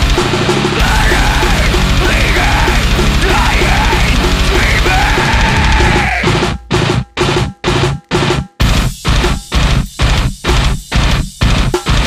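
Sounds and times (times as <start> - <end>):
death metal band playing: 0.0 - 12.0.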